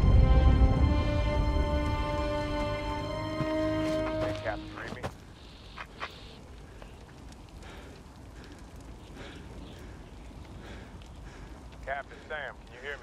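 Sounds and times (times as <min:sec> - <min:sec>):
fires crackling: 0:00.0 - 0:13.0.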